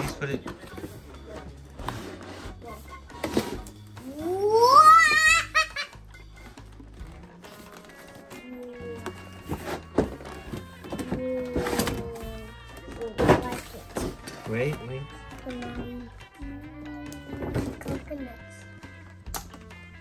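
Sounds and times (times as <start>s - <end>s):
background music: 0.0s - 20.0s
child squealing: 4.2s - 5.7s.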